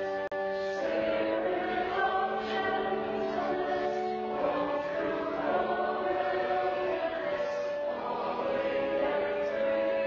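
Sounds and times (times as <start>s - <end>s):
congregation singing a hymn: 0.0s - 10.0s
pipe organ: 0.0s - 10.0s.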